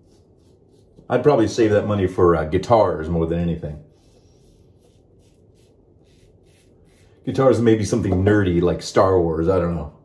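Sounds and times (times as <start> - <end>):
faint razor scraping stubble: 0.0 - 1.8, 3.8 - 7.8.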